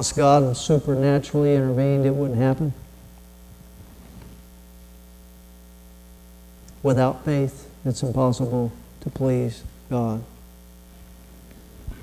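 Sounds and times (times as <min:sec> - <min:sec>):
man speaking: 0:00.0 - 0:02.8, 0:06.8 - 0:10.3
electrical mains hum: 0:00.0 - 0:12.0.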